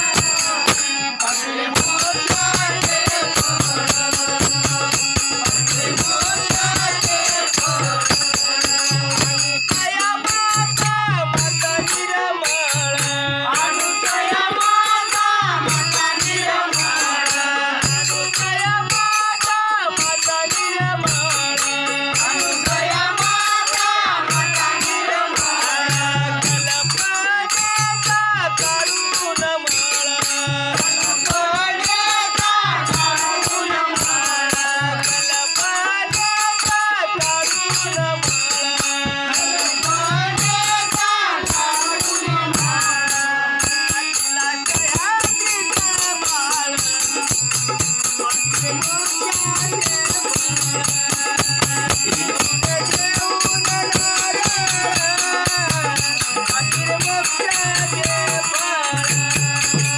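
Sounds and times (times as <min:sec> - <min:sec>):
group singing with lead voice: 0:00.0 - 0:59.9
jingling hand cymbals: 0:00.0 - 0:59.9
rhythmic percussion: 0:00.0 - 0:59.9.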